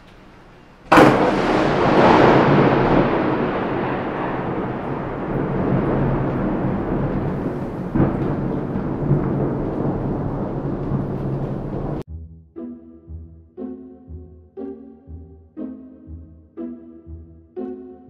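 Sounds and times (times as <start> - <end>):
rolling thunder rumble: 0.0 - 12.0
thunder crack: 0.0 - 12.0.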